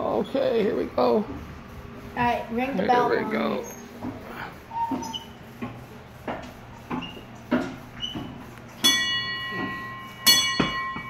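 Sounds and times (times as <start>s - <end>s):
ship's bell ringing: 8.8s - 11.0s.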